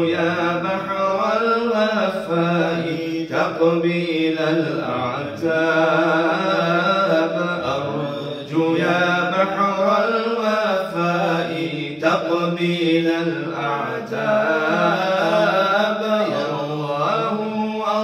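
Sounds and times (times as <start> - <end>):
men chanting unaccompanied: 0.0 - 18.0.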